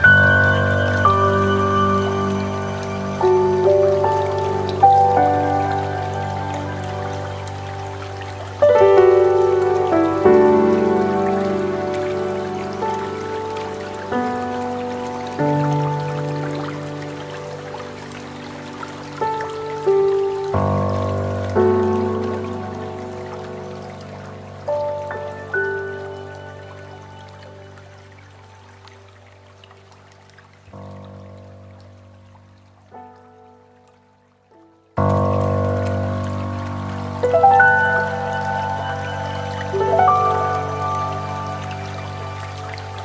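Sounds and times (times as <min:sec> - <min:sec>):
calm instrumental music: 0:00.0 - 0:30.7, 0:31.7 - 0:43.0.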